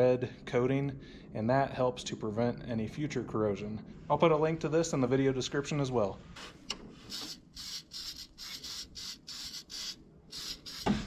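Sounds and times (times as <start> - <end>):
aerosol spray hissing: 7.1 - 11.0.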